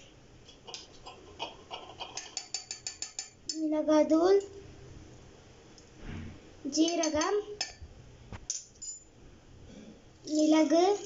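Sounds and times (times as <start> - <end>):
spoon tapping metal pot: 0.7 - 3.6, 6.8 - 7.8.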